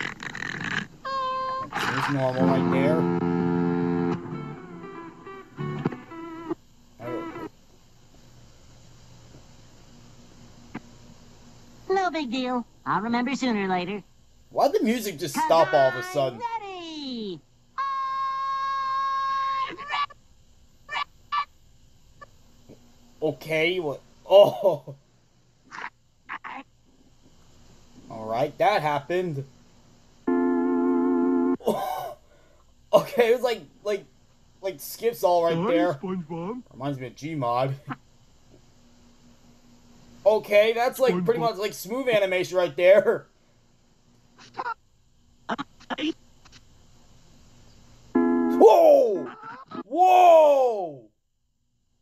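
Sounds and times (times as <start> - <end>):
cartoon squeaks: 0.0 - 2.3, 17.8 - 20.2, 20.9 - 21.5
buzzy held tone: 0.0 - 7.6, 9.8 - 21.6, 30.2 - 31.8, 34.6 - 38.1, 47.7 - 50.0.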